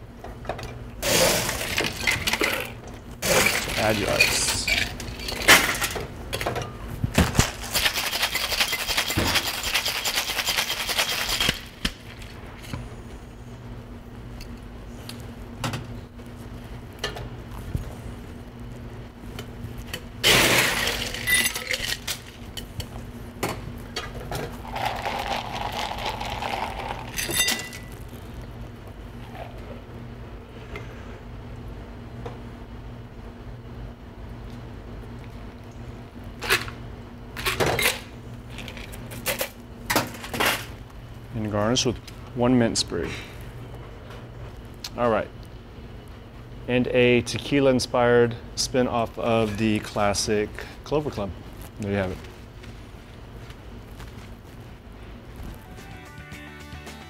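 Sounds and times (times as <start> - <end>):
ice rattling in cocktail shaker: 3.3 - 5.5, 7.5 - 11.7, 20.6 - 22.3, 24.6 - 27.9.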